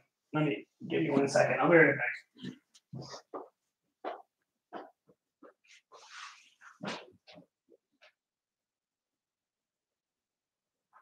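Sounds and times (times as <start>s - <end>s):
faint footsteps walking: 2.3s - 8.1s.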